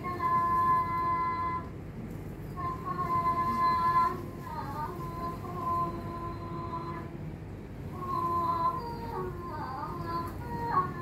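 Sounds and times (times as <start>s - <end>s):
woman singing: 0.0s - 1.9s, 2.5s - 7.3s, 7.9s - 11.0s.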